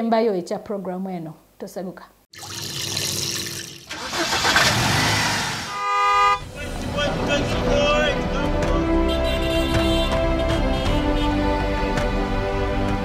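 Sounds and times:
street traffic: 4.0s - 12.4s
car horn honk: 5.6s - 11.5s
bumper music: 5.8s - 13.0s.

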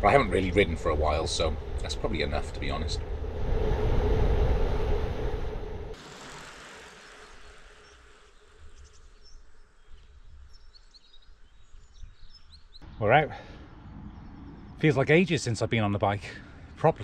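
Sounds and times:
wind rushing over camera: 0.0s - 6.0s.

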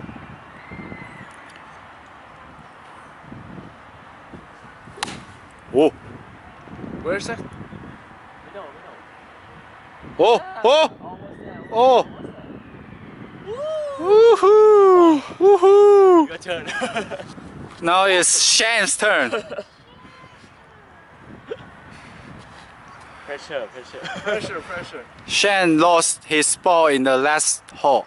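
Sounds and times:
wind buffeting microphone: 0.0s - 28.0s
man cheering woohoo: 10.2s - 11.0s, 13.4s - 16.3s.

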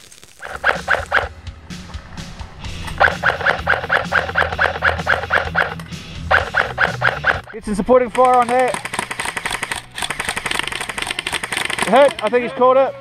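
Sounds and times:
repeating melody over bass: 0.4s - 10.8s.

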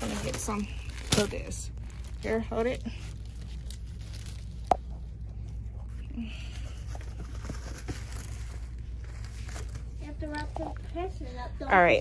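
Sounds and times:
plastic wrap rustling and crinkling: 0.0s - 11.1s
steady low hum: 0.0s - 12.0s.

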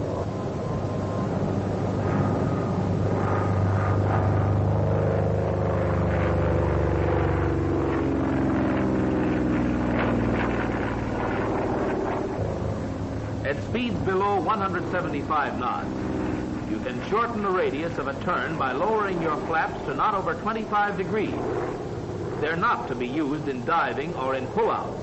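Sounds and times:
propeller plane engine droning: 0.0s - 25.0s.

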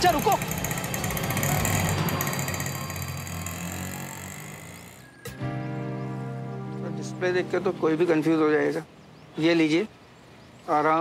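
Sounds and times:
auto-rickshaw engine pulling away: 0.0s - 5.7s.

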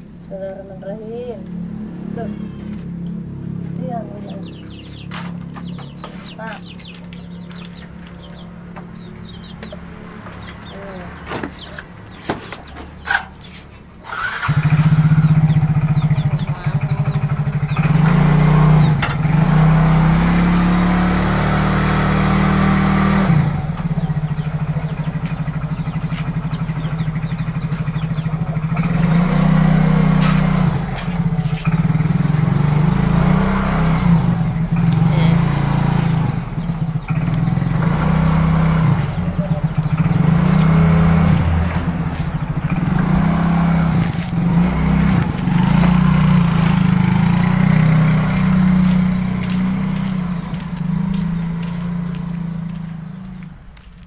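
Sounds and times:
scooter engine revving: 0.3s - 53.9s.

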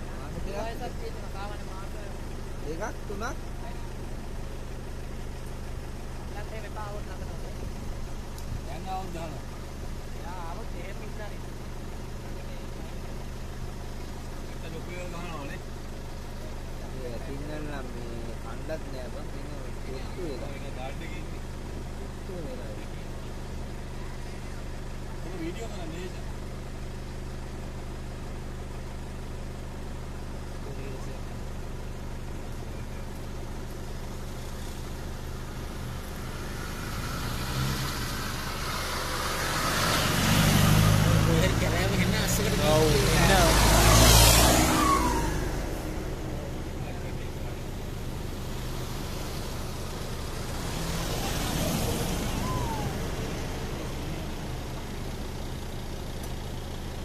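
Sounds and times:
jeep engines idling: 0.0s - 57.0s
vehicle driving past: 34.4s - 55.8s.

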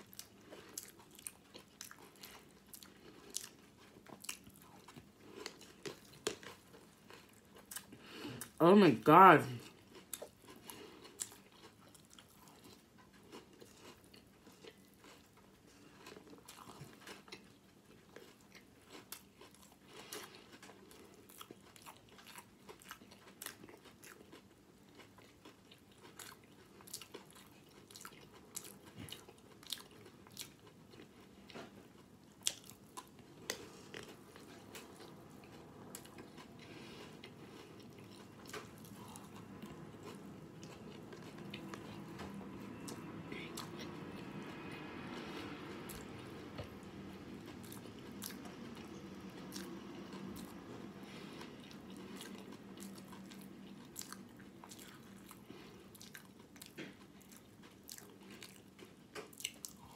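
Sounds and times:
chewing and crunching cereal: 0.0s - 59.9s.

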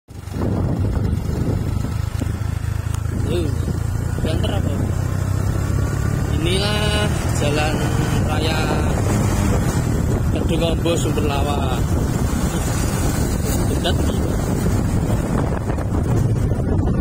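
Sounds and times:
vehicle engine and tyres rumbling: 0.1s - 17.0s.

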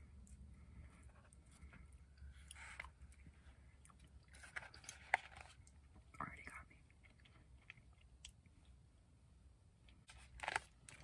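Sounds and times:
close chewing: 0.1s - 6.0s.

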